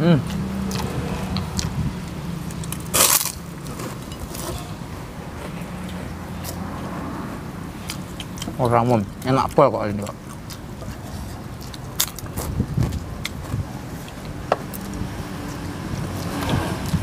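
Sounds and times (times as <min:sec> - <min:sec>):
chewing: 0:00.2 - 0:04.8, 0:05.4 - 0:17.0
crunch of crisp cracker: 0:02.5 - 0:04.7.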